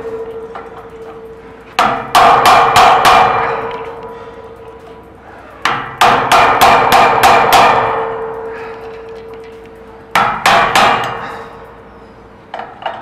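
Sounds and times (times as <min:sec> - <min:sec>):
hammer striking metal: 0:00.0 - 0:11.8
ringing metal tone: 0:00.0 - 0:12.3.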